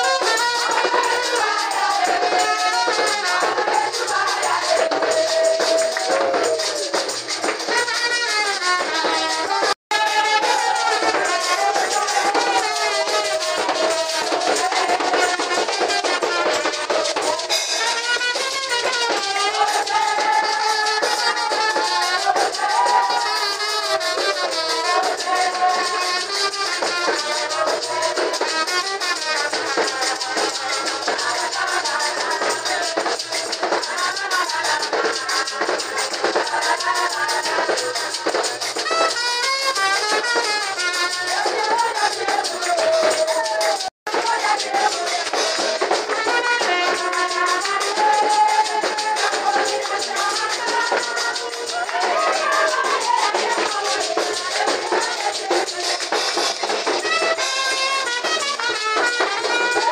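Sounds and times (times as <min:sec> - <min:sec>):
voices singing: 0:00.0 - 0:07.6, 0:09.4 - 0:38.9, 0:40.8 - 0:58.6
drums: 0:00.0 - 0:59.9
rattling hand percussion: 0:00.0 - 0:59.9.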